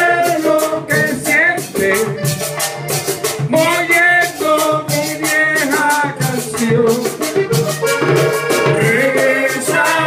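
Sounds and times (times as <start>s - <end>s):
button accordion melody: 0.0s - 10.0s
hand drumming: 0.0s - 10.0s.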